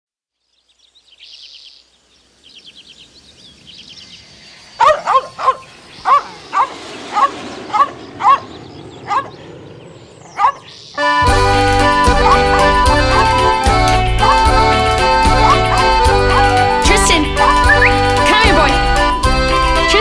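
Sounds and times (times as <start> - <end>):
dog barking: 4.8 - 8.5, 9.1 - 9.4, 10.4 - 10.7.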